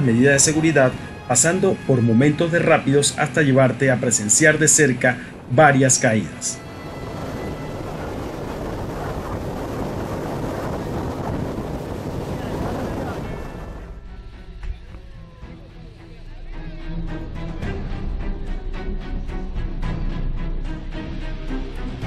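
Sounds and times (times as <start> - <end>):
water rushing: 0.0 - 14.0
wind: 0.0 - 22.0.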